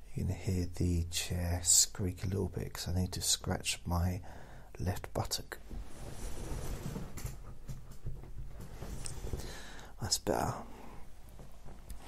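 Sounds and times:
chair creaking: 5.6s - 9.7s.

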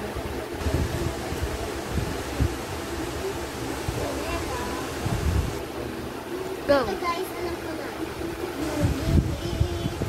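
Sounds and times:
girl talking: 6.7s - 10.0s.

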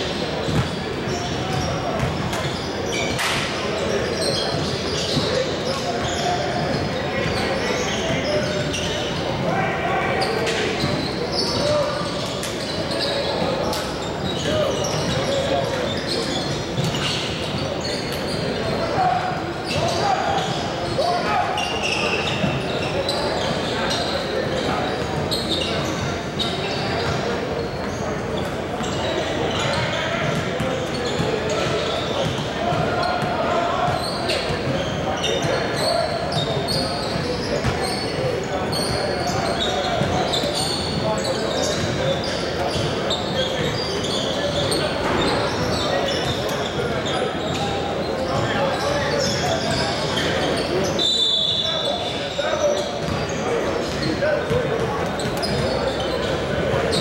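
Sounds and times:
many voices talking echoing: 0.0s - 57.0s.

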